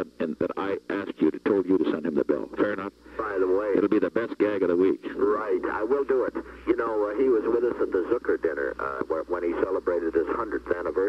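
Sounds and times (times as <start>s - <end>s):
men talking over telephone line: 0.0s - 11.0s.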